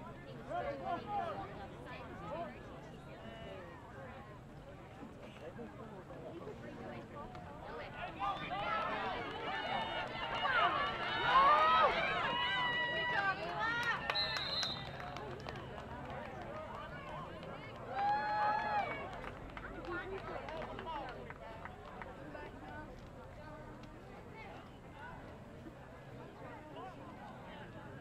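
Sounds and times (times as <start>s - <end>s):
crowd shouting and cheering: 7.8s - 15.0s
referee's whistle blast: 14.1s - 14.8s.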